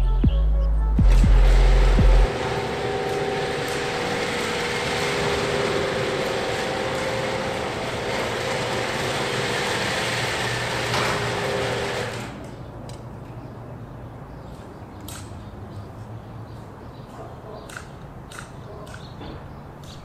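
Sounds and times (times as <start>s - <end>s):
garage door opener motor hum: 1.0s - 12.6s.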